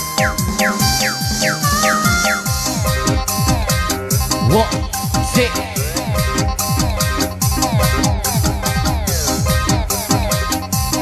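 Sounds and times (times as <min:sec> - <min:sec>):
dance remix with heavy bass: 0:00.0 - 0:11.0.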